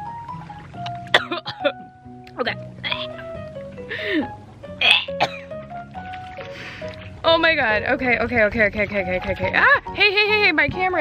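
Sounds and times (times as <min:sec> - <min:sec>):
background music: 0:00.0 - 0:11.0
woman making disgusted noises: 0:02.8 - 0:03.2, 0:04.8 - 0:05.2.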